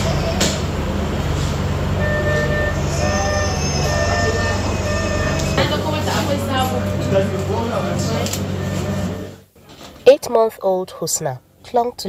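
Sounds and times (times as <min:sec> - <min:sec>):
low machine hum: 0:00.0 - 0:09.5
medical equipment beeping: 0:02.0 - 0:09.4
voices: 0:02.0 - 0:09.4.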